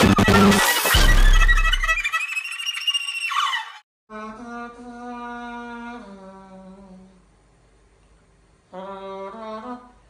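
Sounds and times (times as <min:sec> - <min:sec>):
bright electronic music: 0:00.0 - 0:03.0.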